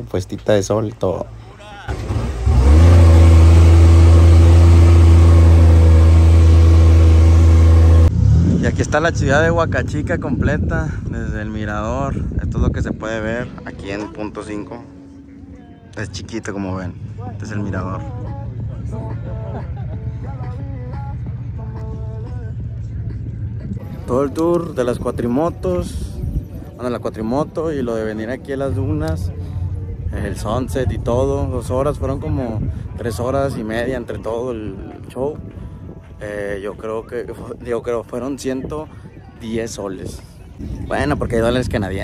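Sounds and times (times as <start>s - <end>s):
dune buggy engine running hard: 1.7s - 13.5s, 16.8s - 33.9s
low rumble: 1.9s - 13.7s, 16.8s - 33.1s
faint voices talking: 10.9s - 42.0s.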